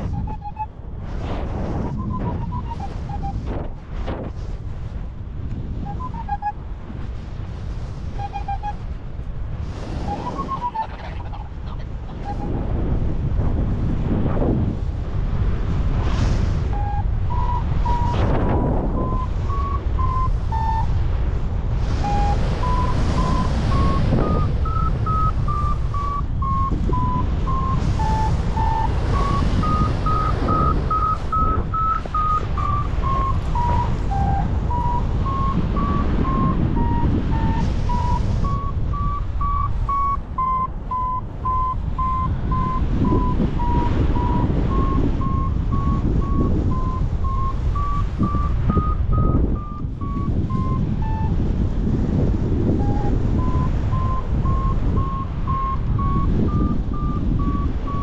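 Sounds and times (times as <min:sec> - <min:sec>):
variometer beeping: 0:00.0 - 0:00.7, 0:01.9 - 0:03.4, 0:05.8 - 0:06.6, 0:08.2 - 0:08.8, 0:10.0 - 0:11.0, 0:16.6 - 0:21.3, 0:21.9 - 0:51.8, 0:52.7 - 0:58.0
wind rush over microphone: 0:00.0 - 0:58.0.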